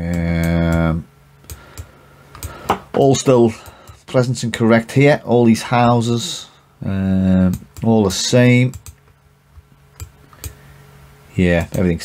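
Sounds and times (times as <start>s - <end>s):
faint steady hum: 0.0s - 12.0s
computer mouse clicks: 10.0s - 10.6s.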